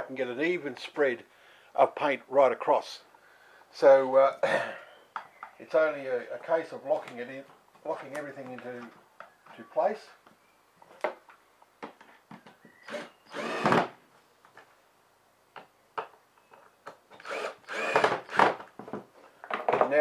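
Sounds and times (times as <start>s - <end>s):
handling knocks and clicks: 6.9s - 9.6s, 18.4s - 20.0s
cordless drill driving screws: 12.8s - 13.9s, 17.1s - 18.6s.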